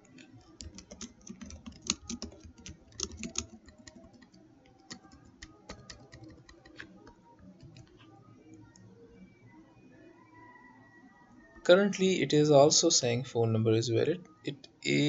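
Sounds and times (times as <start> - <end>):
typing on computer keyboard: 0.0 - 8.0.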